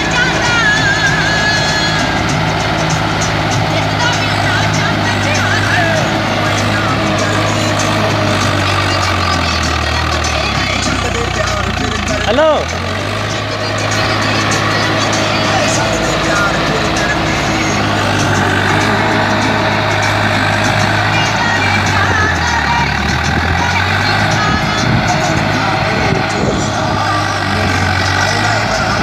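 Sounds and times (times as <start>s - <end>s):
tractor diesel engine under load: 0.0s - 29.0s.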